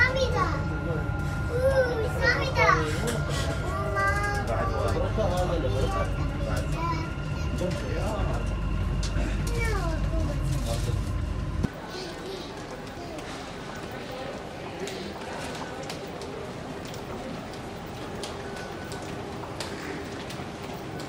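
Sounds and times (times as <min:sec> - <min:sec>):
passengers chattering: 0:00.0 - 0:21.0
train carriage low rumble: 0:00.0 - 0:21.0.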